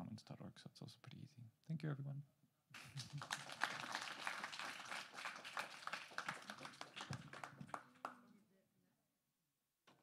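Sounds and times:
audience applauding: 2.8 - 8.2.

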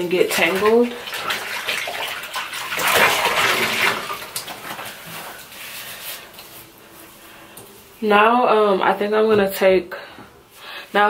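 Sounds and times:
bathwater sloshing and splashing: 0.0 - 6.7.

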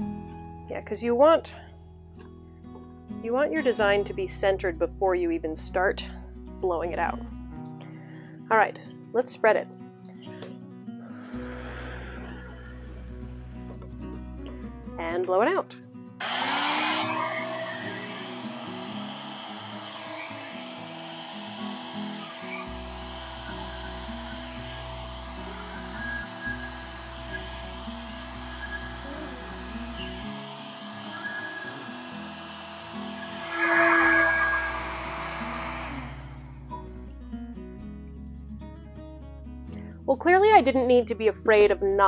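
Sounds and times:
hairdryer blowing: 11.2 - 13.7, 16.2 - 36.7.

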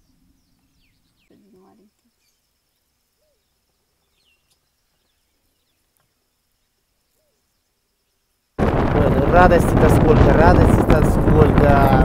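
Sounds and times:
faint bird calls: 0.0 - 8.3
wind buffeting microphone: 8.6 - 12.0.

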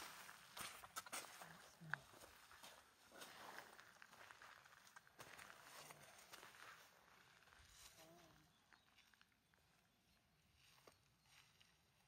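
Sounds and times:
footsteps on gravel: 0.0 - 9.3.

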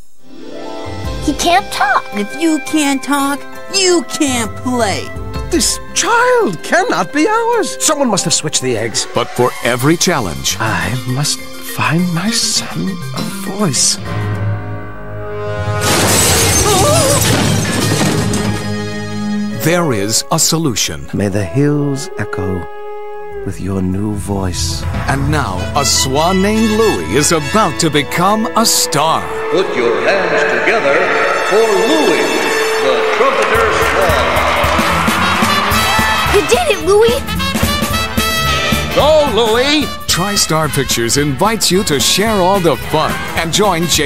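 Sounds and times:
orchestral trailer music: 0.2 - 44.0
glass shattering crash: 15.8 - 18.9
voices: 23.4 - 35.5, 36.2 - 37.3
crowd applauding and cheering: 29.3 - 39.3
upbeat music with drum beat: 31.3 - 44.0.

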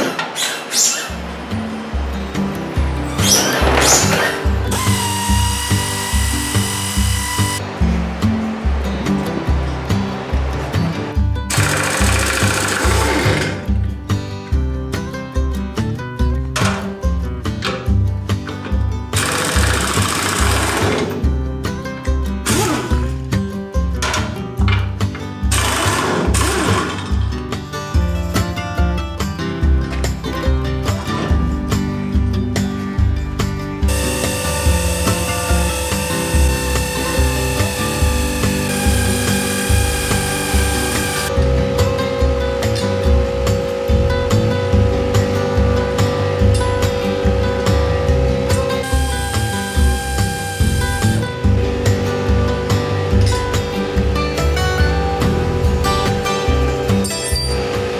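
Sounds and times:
pneumatic impact wrench rattling: 0.0 - 1.2, 3.2 - 7.6, 11.5 - 13.6, 19.2 - 21.2, 22.4 - 23.1, 25.5 - 27.1, 33.9 - 41.3, 48.5 - 51.3
background music with steady beat: 1.1 - 57.9.

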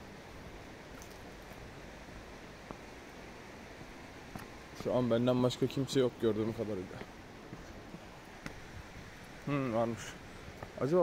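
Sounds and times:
faint outdoor wash: 0.0 - 11.0.

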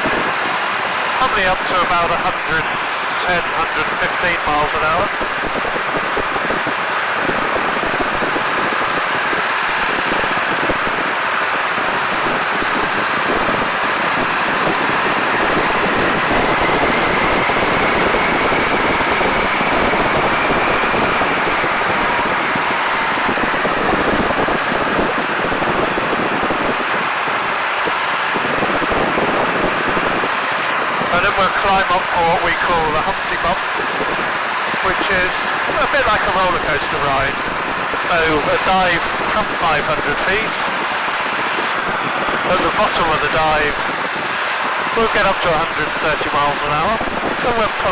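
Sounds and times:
faint whine: 0.0 - 47.9
propeller plane engine: 0.0 - 47.9
wind rushing over microphone: 0.0 - 47.9.

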